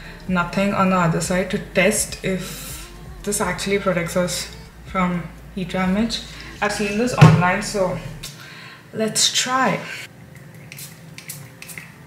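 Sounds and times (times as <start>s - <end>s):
spray bottle spritzing: 10.6s - 12.0s.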